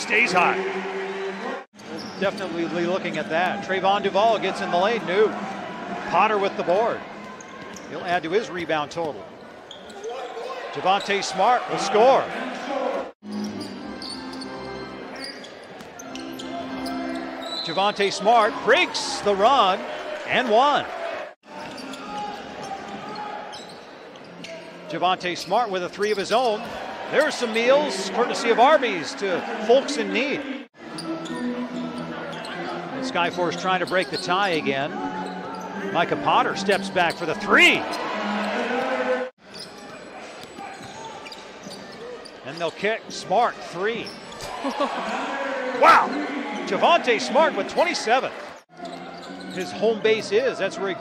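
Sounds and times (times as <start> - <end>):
commentator talking: 0.0 - 0.7, 45.7 - 48.4
court noise: 0.0 - 51.0
shoe squeaks on court: 1.8 - 2.6, 9.4 - 11.1, 13.2 - 18.1, 21.6 - 24.8, 39.4 - 42.8, 44.0 - 44.5, 48.5 - 49.8.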